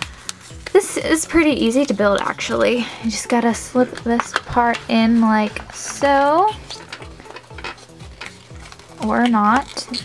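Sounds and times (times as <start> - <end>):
cardboard rustling and scraping: 4.6 - 10.0.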